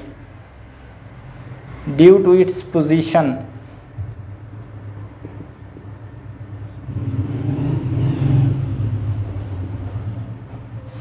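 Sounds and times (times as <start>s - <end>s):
steady low hum: 3.4s - 11.0s
low engine rumble: 4.0s - 11.0s.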